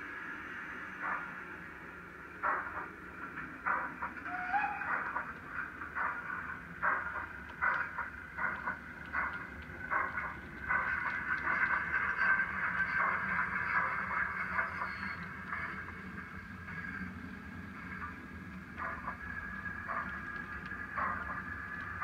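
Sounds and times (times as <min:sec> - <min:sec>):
model steam locomotive chuffs: 0:00.0 - 0:22.0.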